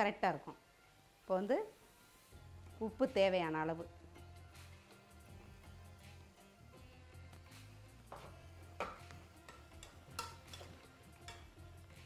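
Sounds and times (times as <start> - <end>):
faint background music: 0.0 - 12.0
fork scraping a metal pot: 9.5 - 11.5.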